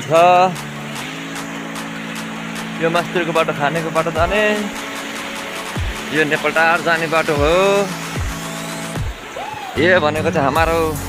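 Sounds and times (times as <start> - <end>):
vehicle engine humming: 0.0 - 11.0
person speaking: 2.8 - 4.8, 6.1 - 8.0.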